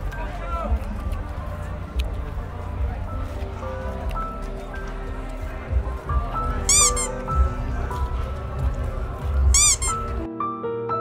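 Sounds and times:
outdoor ambience: 0.0s - 10.3s
soft piano music: 1.4s - 11.0s
high squeaky chirps: 6.6s - 7.3s, 9.6s - 10.2s.

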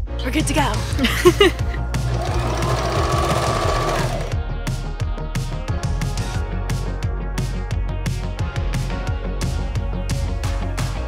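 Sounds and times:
background music: 0.0s - 11.0s
sewing machine stitching: 2.0s - 4.4s.

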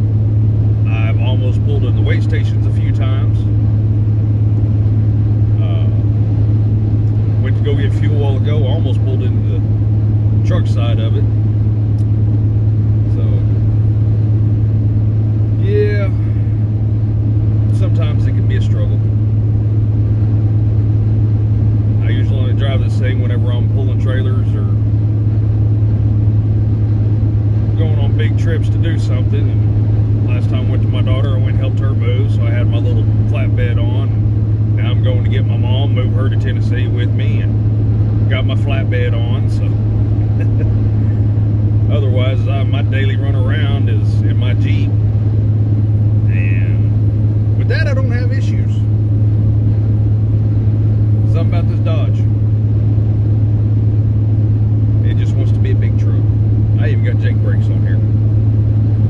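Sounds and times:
road noise inside cab: 0.0s - 59.0s
truck engine drone: 0.0s - 59.0s.

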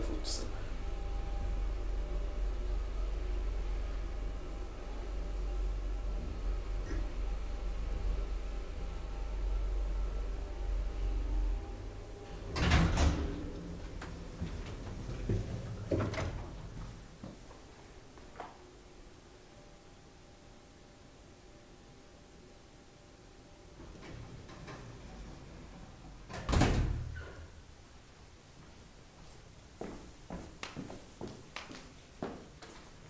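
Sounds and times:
elevator doors sliding: 0.0s - 17.2s, 23.6s - 27.8s
elevator door thud: 12.3s - 16.8s, 23.8s - 27.5s.

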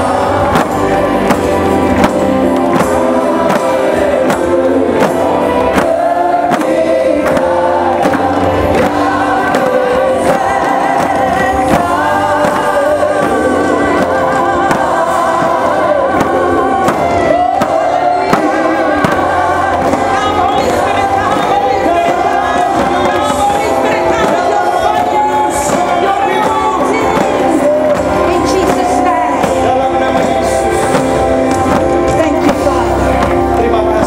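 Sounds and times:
band playing worship music: 0.0s - 34.0s
percussive hits: 0.0s - 34.0s
sharp beat: 0.0s - 34.0s
woman singing with vibrato: 3.0s - 30.4s.

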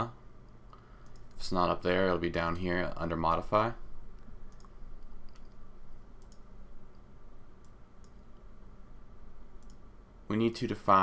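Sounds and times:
low background hum: 0.0s - 11.0s
faint computer mouse clicks: 0.5s - 1.4s, 4.2s - 5.6s, 6.2s - 7.0s, 7.6s - 8.4s, 9.6s - 9.8s.

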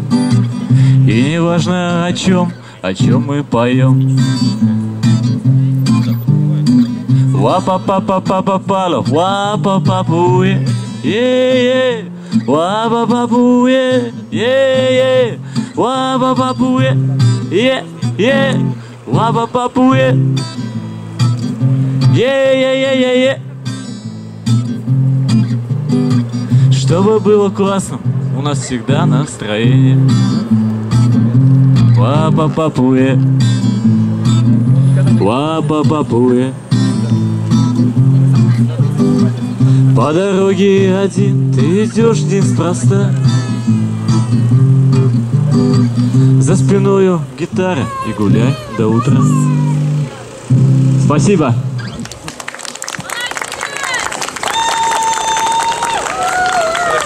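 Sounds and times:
acoustic guitar strummed: 0.0s - 52.0s.

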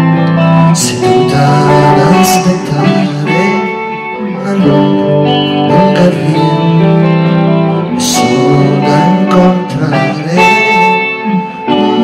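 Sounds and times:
guitar accompaniment: 0.0s - 12.0s
man singing into microphone: 0.5s - 12.0s.

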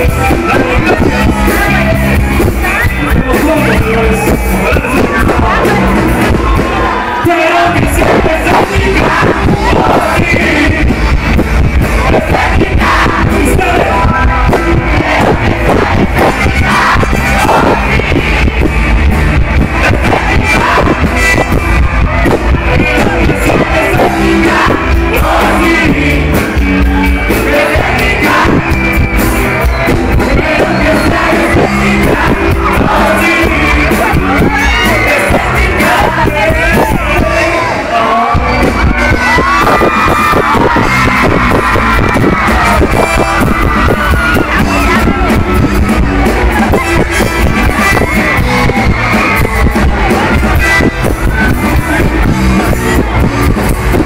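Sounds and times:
steady drum beat: 0.0s - 37.5s, 38.3s - 54.0s
live rock band with singing: 0.0s - 54.0s.

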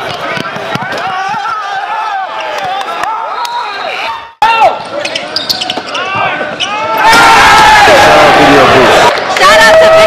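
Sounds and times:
sneakers squeaking: 4.8s - 7.0s.

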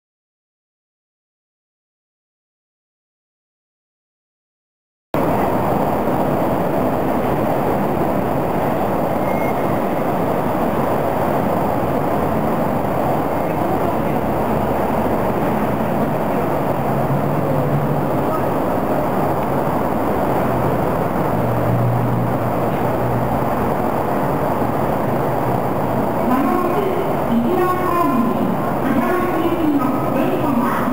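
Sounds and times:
low hum: 5.2s - 30.9s
traffic rumble: 5.2s - 30.9s.

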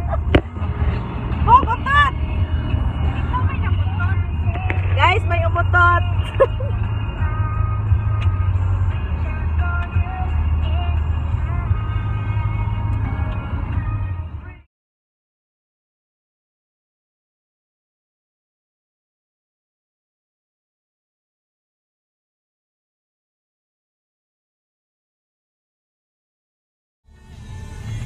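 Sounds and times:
car engine and tyres rumbling: 0.0s - 14.7s, 27.1s - 28.0s
music playing: 0.0s - 14.7s, 27.1s - 28.0s.

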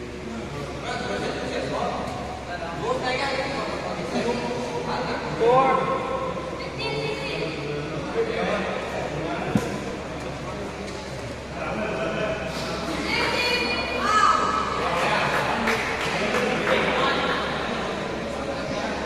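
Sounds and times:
voices talking and calling out: 0.1s - 19.0s.

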